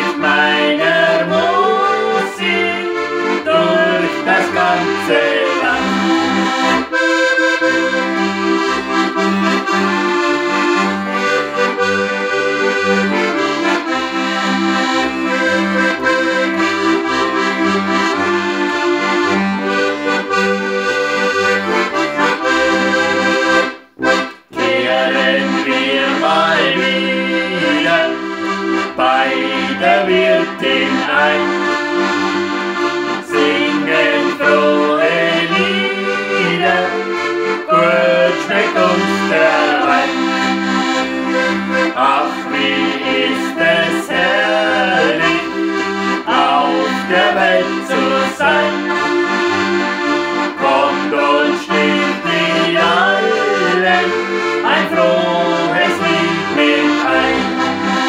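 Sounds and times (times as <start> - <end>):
people singing: 0.0 - 6.5, 24.5 - 28.3, 28.9 - 31.7, 33.2 - 40.4, 41.9 - 45.6, 46.2 - 48.9, 50.6 - 57.9
button accordion: 0.0 - 58.0
piano accordion: 0.0 - 58.0.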